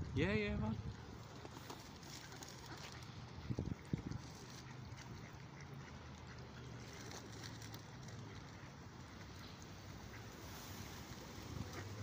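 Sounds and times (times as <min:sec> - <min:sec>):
ducks quacking: 0:08.1 - 0:12.0.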